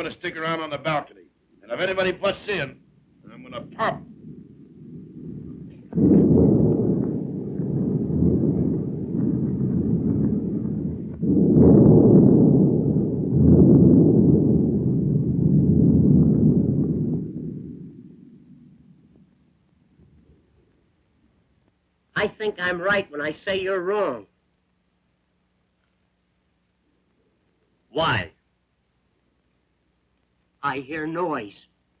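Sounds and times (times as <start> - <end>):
loud low rumbling: 1.8 - 21.5.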